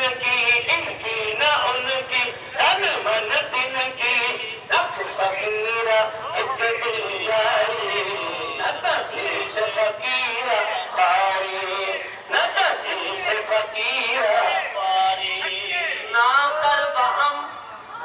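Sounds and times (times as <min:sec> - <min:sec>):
man singing: 0:00.0 - 0:17.7.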